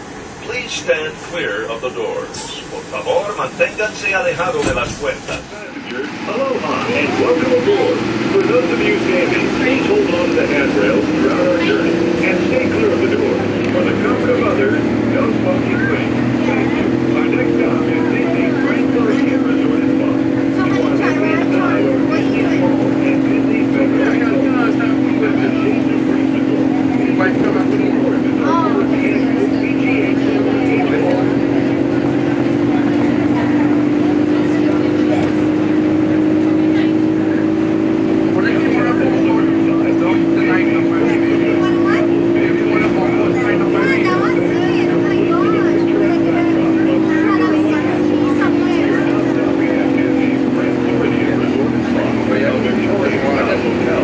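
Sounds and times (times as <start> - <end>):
monorail electric drive whine: 0.0 - 54.0.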